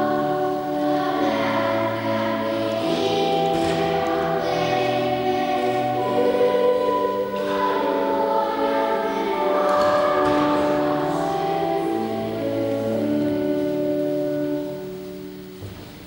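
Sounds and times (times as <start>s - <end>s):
children's choir singing: 0.0s - 15.6s.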